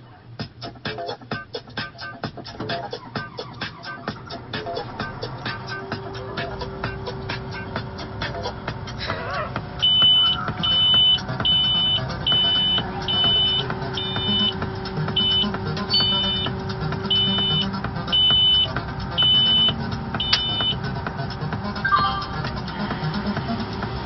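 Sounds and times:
combine engine running: 0:01.8 - 0:24.0
high-pitched warning beeps: 0:09.8 - 0:14.6, 0:15.2 - 0:16.5, 0:17.1 - 0:20.8.

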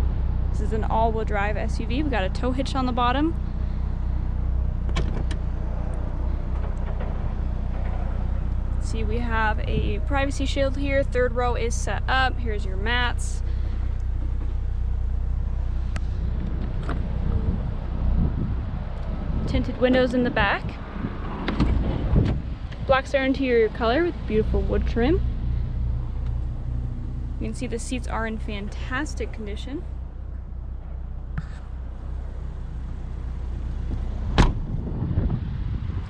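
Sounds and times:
low rumble: 0:00.0 - 0:36.0
liftgate motor humming: 0:01.4 - 0:19.2, 0:24.1 - 0:34.7
liftgate latch clicking open: 0:04.9 - 0:05.4.

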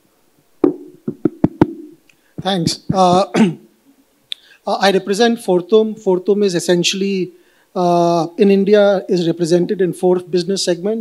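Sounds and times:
microphone knocks through pa: 0:00.6 - 0:03.4.

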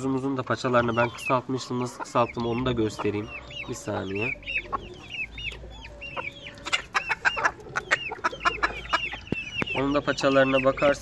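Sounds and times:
chickens cheeping: 0:00.0 - 0:11.0.

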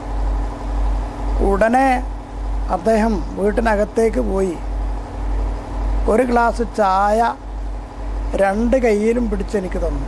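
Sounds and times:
steady low hum: 0:00.0 - 0:10.0
man speaking: 0:01.4 - 0:04.7, 0:06.0 - 0:07.4, 0:08.3 - 0:10.0.

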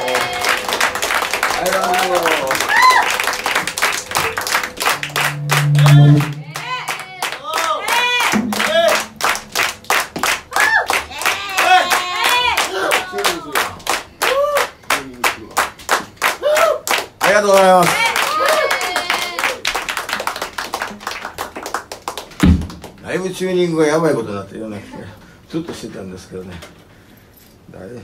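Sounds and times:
low held tone: 0:00.0 - 0:10.1
hand clapping: 0:00.0 - 0:23.0.

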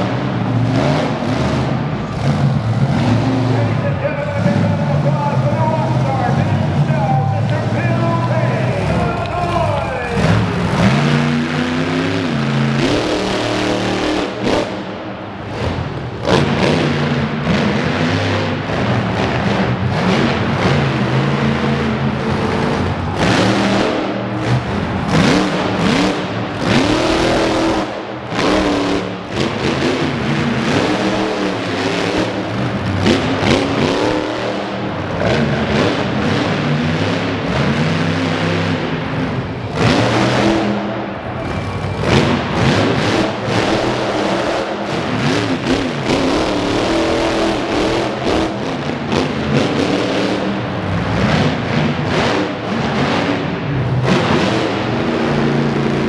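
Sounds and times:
truck engine revving hard: 0:00.0 - 0:56.0.

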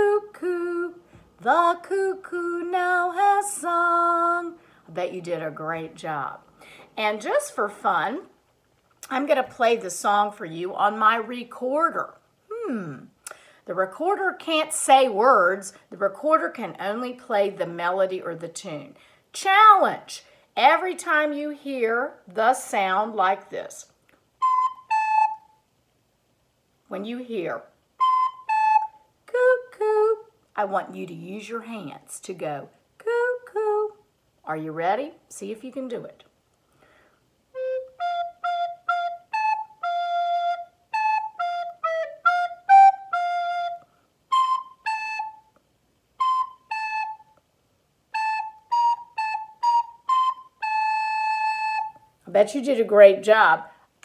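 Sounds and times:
recorder playing simple tune: 0:24.4 - 0:25.6, 0:28.0 - 0:29.1, 0:37.5 - 0:45.6, 0:46.2 - 0:47.4, 0:48.1 - 0:52.1.

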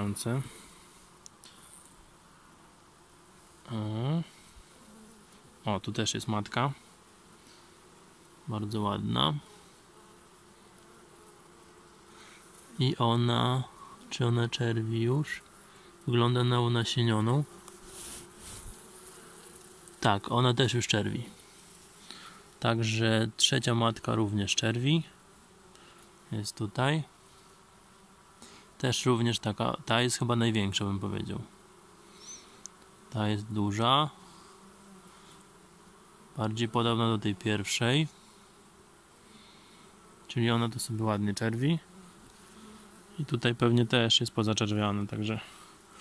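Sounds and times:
bees buzzing: 0:00.0 - 0:46.0
honeybees humming: 0:00.0 - 0:46.0.

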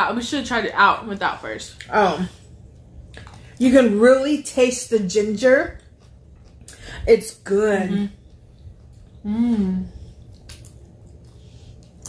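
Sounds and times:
low steady hum: 0:00.0 - 0:12.0
wet chewing: 0:02.7 - 0:03.6, 0:05.7 - 0:07.0, 0:08.1 - 0:09.2, 0:10.0 - 0:12.0.

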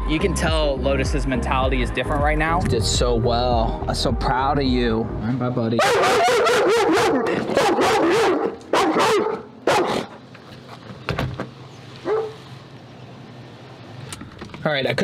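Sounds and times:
dogs barking: 0:05.8 - 0:10.2, 0:12.0 - 0:12.4.

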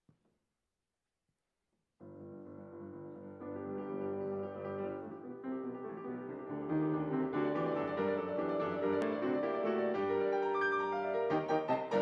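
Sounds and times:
grand piano chords: 0:02.0 - 0:12.0.

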